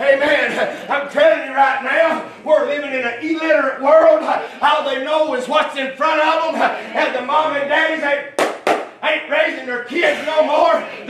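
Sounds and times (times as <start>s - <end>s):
man preaching: 0.0s - 11.0s
hand claps: 8.4s - 9.0s.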